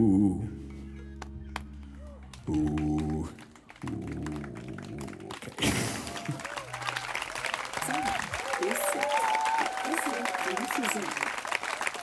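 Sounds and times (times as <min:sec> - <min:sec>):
person singing: 0:00.0 - 0:01.0, 0:02.4 - 0:05.3
audience applause: 0:02.0 - 0:12.0.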